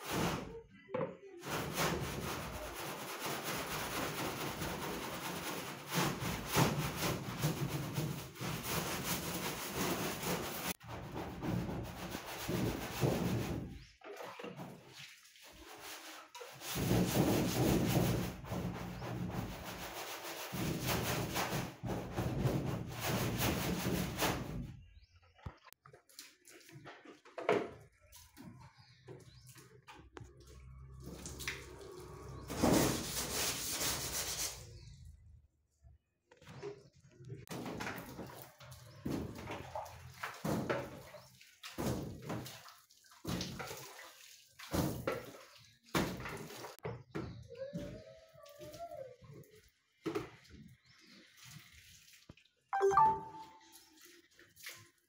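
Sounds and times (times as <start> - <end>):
broom scrubbing a metal door: 1.4 - 24.8, 30.6 - 35.0.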